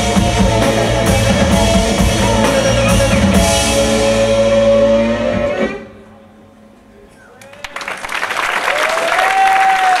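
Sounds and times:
drum kit: 0:00.0 - 0:05.8.

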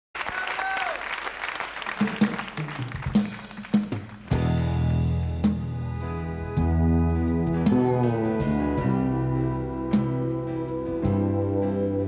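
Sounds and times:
audience applauding: 0:00.2 - 0:04.4
low plucked notes: 0:04.3 - 0:12.0.

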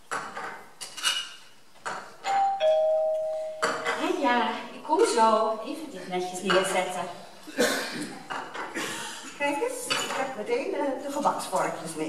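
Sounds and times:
two-tone doorbell chime: 0:02.3 - 0:03.9.

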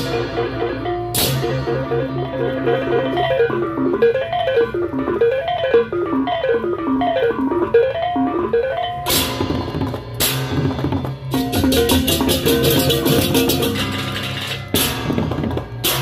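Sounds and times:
tuned bronze gongs melody: 0:11.3 - 0:14.8.

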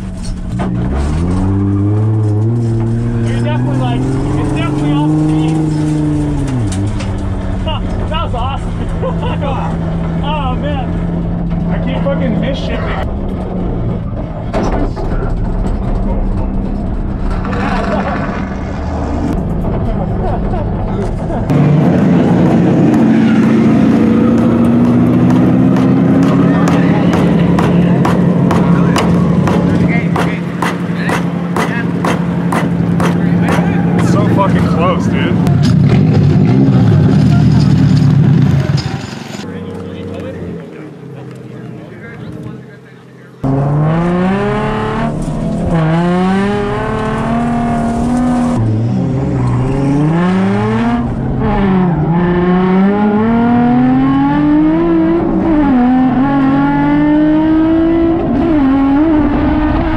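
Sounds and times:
car engine revving: 0:00.0 - 0:59.9.

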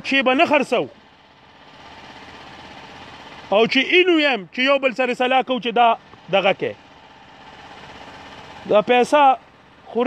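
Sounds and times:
low engine throbbing: 0:00.0 - 0:10.0.

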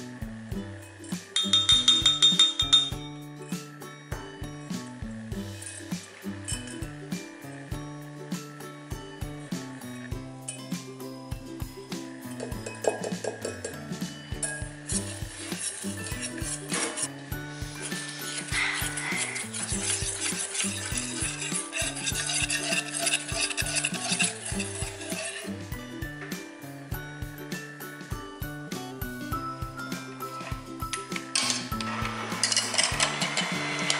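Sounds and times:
wire whisk clinking on metal bowl: 0:01.1 - 0:03.0, 0:12.4 - 0:13.8, 0:14.4 - 0:17.1, 0:17.7 - 0:25.6.

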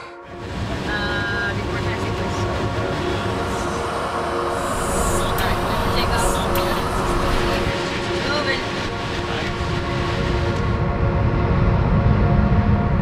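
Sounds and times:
jet engines running: 0:00.2 - 0:13.0.

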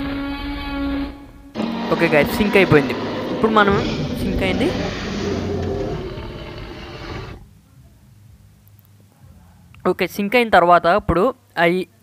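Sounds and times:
low hum: 0:00.0 - 0:07.7
steady rushing noise: 0:01.5 - 0:07.4.

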